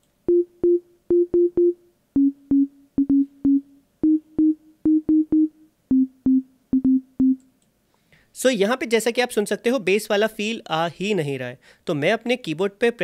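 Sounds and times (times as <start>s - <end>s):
synth sine tone notes: 0.3s - 7.4s.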